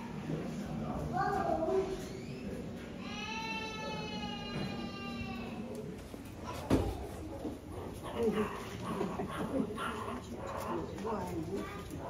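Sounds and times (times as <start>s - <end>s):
chatter of visitors: 0.0s - 12.0s.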